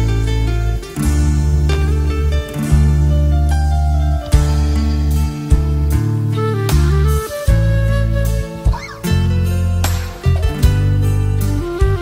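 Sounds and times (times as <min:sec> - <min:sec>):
acoustic guitar playing: 0:00.0 - 0:12.0.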